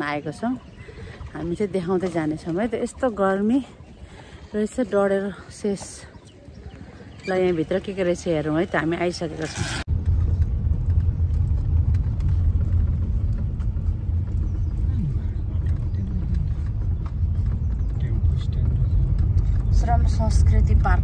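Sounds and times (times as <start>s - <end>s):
vehicle engine and road rumble: 0.0s - 21.0s.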